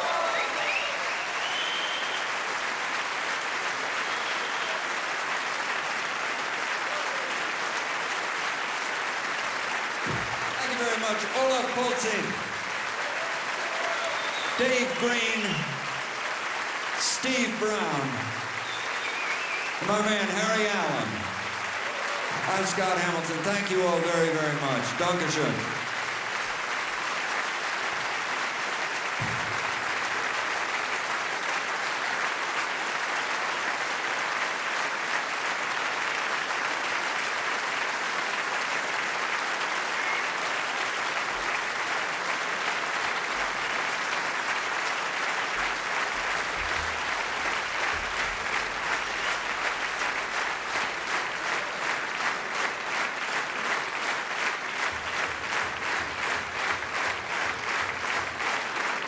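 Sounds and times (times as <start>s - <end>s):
audience applauding: 0.0s - 59.0s.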